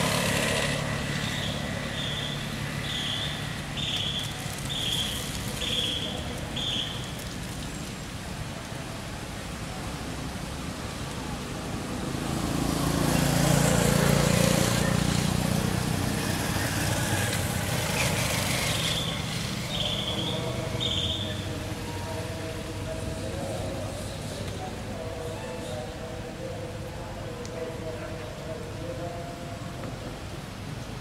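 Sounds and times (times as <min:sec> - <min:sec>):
vehicle passing by: 0:00.0 - 0:06.4, 0:10.7 - 0:29.8.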